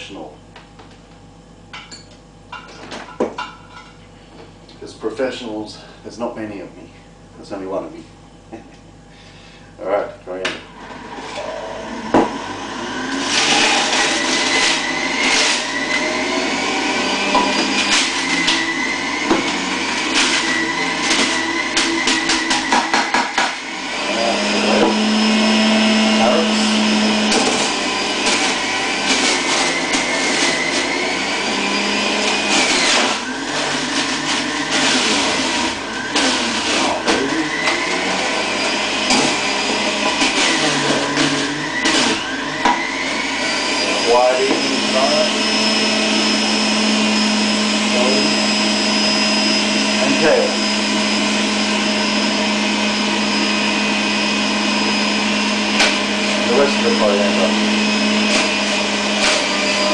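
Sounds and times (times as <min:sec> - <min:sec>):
electric juicer motor whining: 0:10.6 - 0:59.9.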